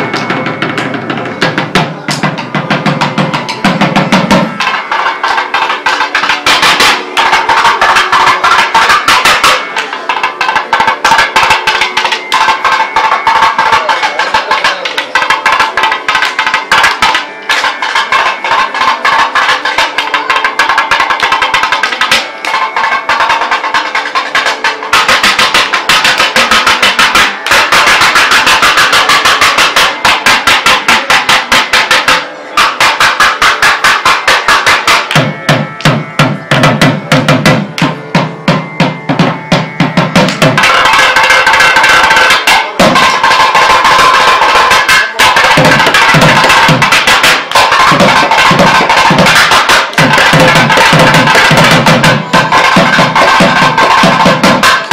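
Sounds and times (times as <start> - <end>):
barrel drums played fast: 0.0 - 54.9.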